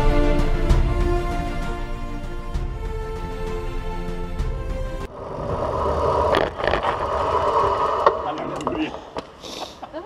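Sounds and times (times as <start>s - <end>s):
background music: 0.0s - 5.1s.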